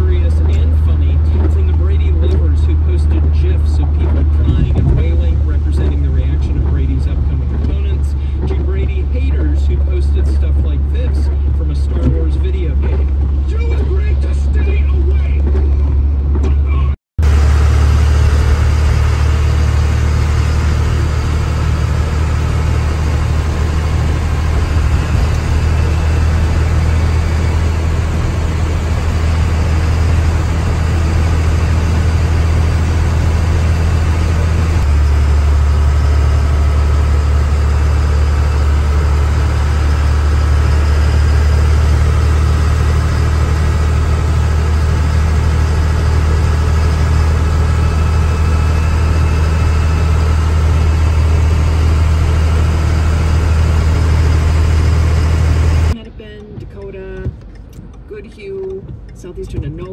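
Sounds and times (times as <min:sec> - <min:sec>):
car engine and road drone: 0:00.0 - 0:59.9.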